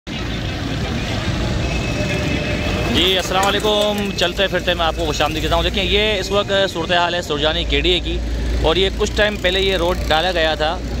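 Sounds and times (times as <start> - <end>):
motorcycles running: 0.2 - 11.0.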